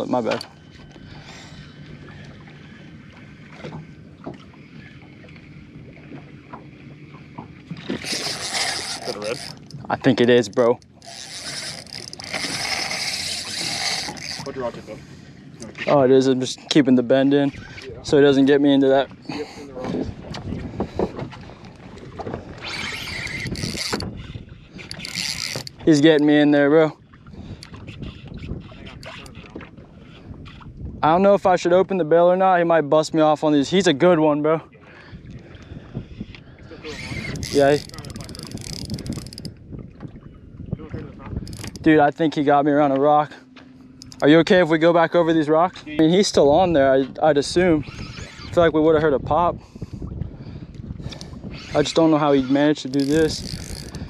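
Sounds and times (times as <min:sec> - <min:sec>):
water lapping at boat hull: 0:00.0 - 0:54.0
fishing reel drag buzzing: 0:07.7 - 0:15.0, 0:22.5 - 0:26.3, 0:36.2 - 0:39.6, 0:41.4 - 0:42.0, 0:47.4 - 0:48.8, 0:51.0 - 0:54.0
wind on microphone: 0:19.7 - 0:25.9, 0:27.1 - 0:31.6, 0:35.1 - 0:42.1, 0:45.9 - 0:54.0
faint clicks: 0:43.6 - 0:44.2.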